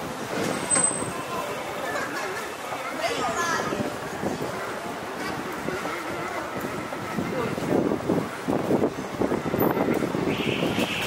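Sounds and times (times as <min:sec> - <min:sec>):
passing cars and scooters: 0:00.0 - 0:11.0.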